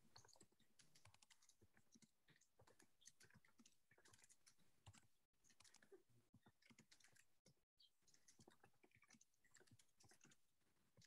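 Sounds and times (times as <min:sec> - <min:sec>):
keyboard typing: 0:00.2 - 0:07.2.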